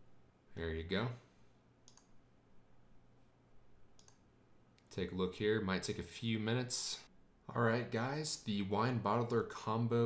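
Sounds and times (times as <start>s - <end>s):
computer mouse clicks: 1.8s - 2.2s, 3.9s - 4.9s.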